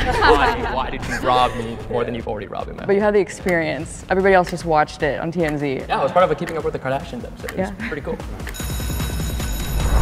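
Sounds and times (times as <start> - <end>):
ringing bell-like alarm tone: 8.6 - 10.0
bass-heavy music swell: 9.3 - 10.0.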